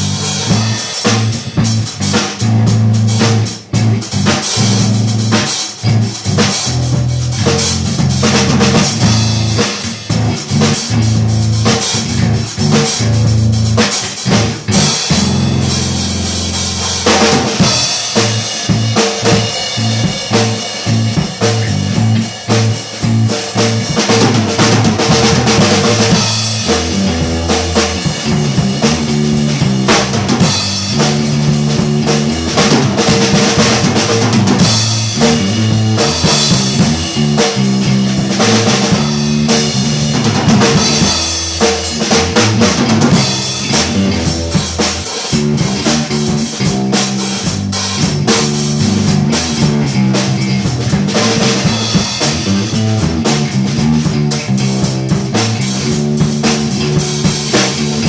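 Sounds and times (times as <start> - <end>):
drum beat: 0.0 - 58.0
electric bass line: 0.0 - 58.0.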